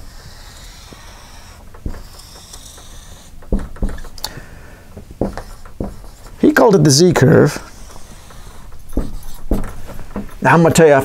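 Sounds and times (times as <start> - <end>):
marker squeaking on whiteboard: 0.0 - 4.4, 5.0 - 11.0
low knocks: 3.4 - 4.2, 5.0 - 6.4, 8.2 - 10.4.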